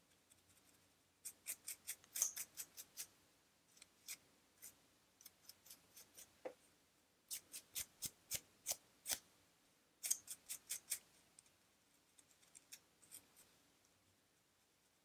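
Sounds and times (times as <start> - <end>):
scratching through hair on scalp: 0.5 - 3.1.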